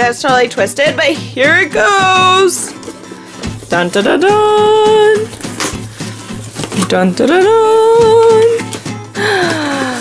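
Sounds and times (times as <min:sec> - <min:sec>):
cardboard and plastic wrap rustling: 0:01.8 - 0:10.0.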